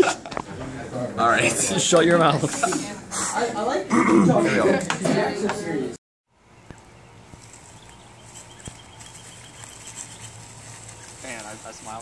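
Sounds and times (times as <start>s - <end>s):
young men talking: 0.0s - 6.0s, 11.1s - 12.0s.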